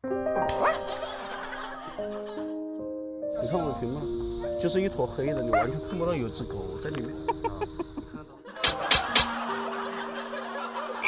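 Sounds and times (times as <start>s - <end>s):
held note of background music: 3.2s - 8.4s
comedic snickering laugh: 7.3s - 11.0s.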